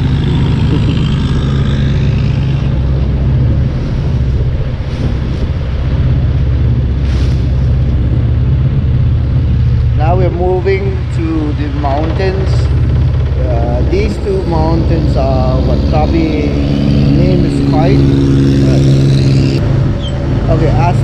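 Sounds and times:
boat engine droning: 0.0s - 21.0s
water rushing along hull: 0.0s - 21.0s.

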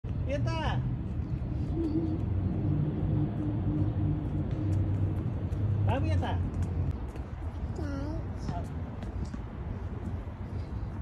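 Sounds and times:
urban street traffic drone: 0.0s - 11.0s.

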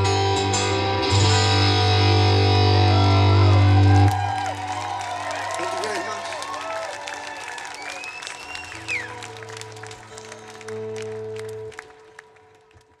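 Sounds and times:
audience clapping and cheering: 2.9s - 13.0s
whistle from audience: 3.6s - 9.4s.

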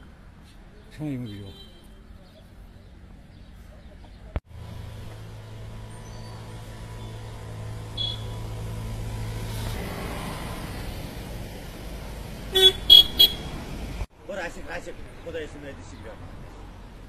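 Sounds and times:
road vehicle rumble: 0.0s - 17.0s
vehicle horn tooting: 8.0s - 8.4s, 12.5s - 13.5s.

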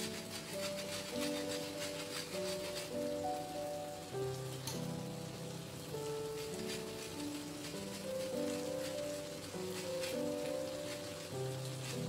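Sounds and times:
shrimp frying in a wok: 0.0s - 12.0s
slow solo piano music: 0.0s - 12.0s.

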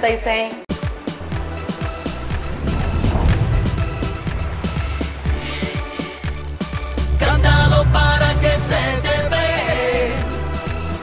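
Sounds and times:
deep continuous bass: 1.2s - 11.0s.

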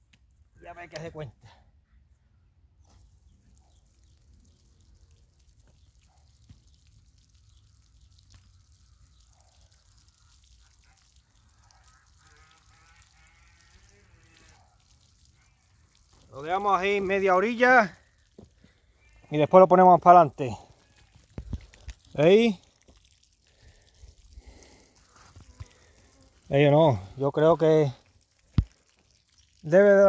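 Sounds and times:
distant animal calls: 8.4s - 16.2s, 18.6s - 19.4s.

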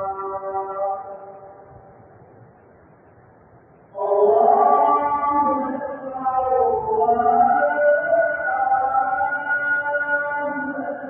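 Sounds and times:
man chanting: 0.0s - 1.6s, 3.9s - 11.0s
low background hiss: 0.0s - 11.0s.

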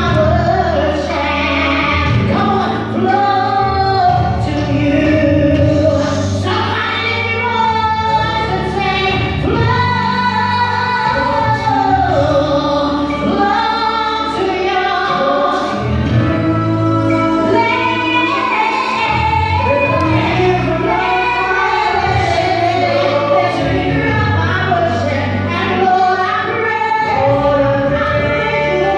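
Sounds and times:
musical accompaniment with low bass: 0.0s - 28.9s
woman singing gospel song: 0.0s - 28.9s.

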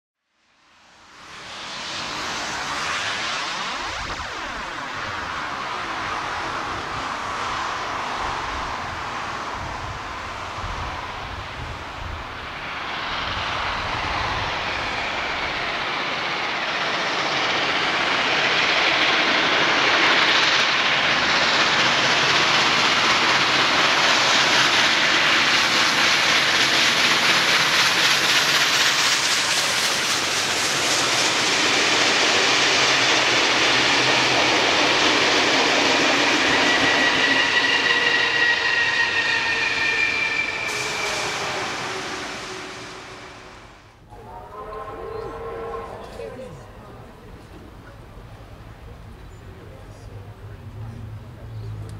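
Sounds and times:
steam locomotive hauling train: 0.6s - 51.9s
steady high tones: 30.5s - 47.1s.

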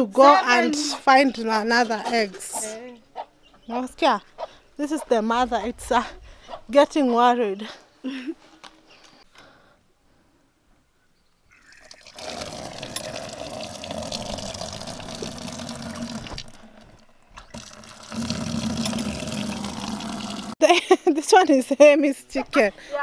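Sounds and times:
water running into plastic bucket: 11.7s - 20.6s.

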